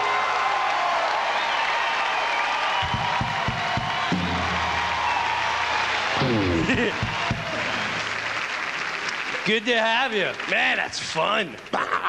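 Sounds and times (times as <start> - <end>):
audience applauding and cheering: 0.0 - 11.7.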